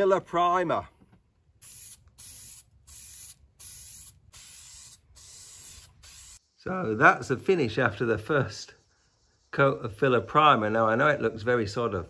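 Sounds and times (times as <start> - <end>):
aerosol spray hiss: 1.6 - 6.4.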